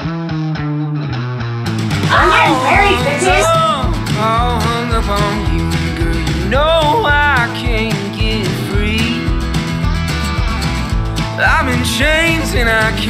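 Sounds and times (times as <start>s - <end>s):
country song with guitar: 0.0s - 13.0s.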